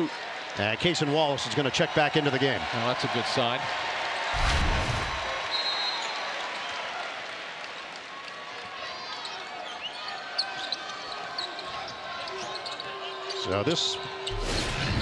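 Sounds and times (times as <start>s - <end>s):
sneaker squeaks: 9.2s - 15.0s.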